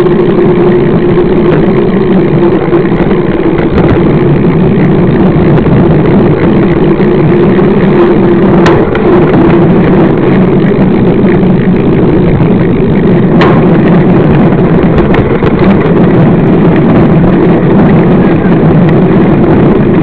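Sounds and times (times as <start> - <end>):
bike tyre humming on asphalt: 0.0 - 20.0
rattle: 0.0 - 20.0
wind rush: 0.0 - 20.0.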